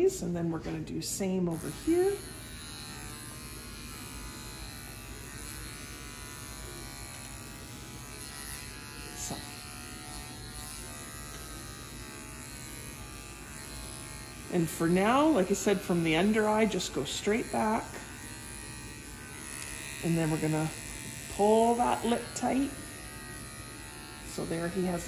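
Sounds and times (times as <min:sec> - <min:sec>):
electric clippers running: 0:00.0 - 0:25.0.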